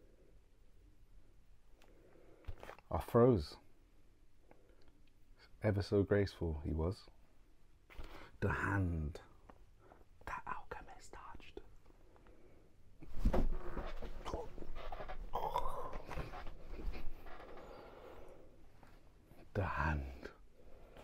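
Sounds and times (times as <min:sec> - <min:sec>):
low indistinct voice: 0:14.2 - 0:16.4.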